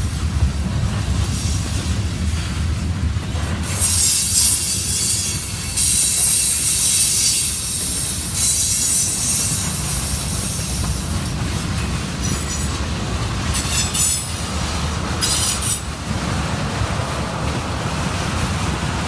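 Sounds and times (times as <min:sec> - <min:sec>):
train wheels rumbling on rail: 0:00.0 - 0:19.0.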